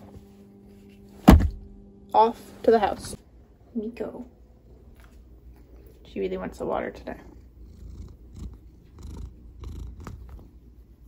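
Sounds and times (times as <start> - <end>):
dull thunk: 1.2 - 1.7.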